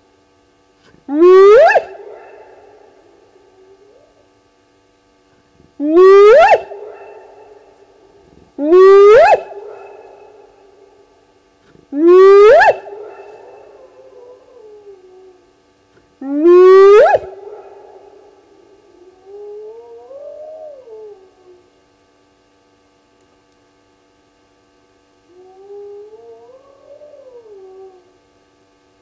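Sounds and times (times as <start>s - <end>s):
hyena whooping: 1.1s - 2.6s, 5.8s - 7.4s, 8.6s - 10.3s, 12.0s - 15.4s, 16.2s - 18.1s.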